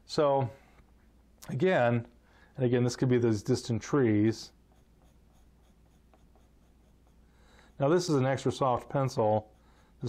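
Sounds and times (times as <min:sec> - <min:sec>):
low steady hum: 0:00.0 - 0:10.0
pencil scratching on paper: 0:04.4 - 0:10.0.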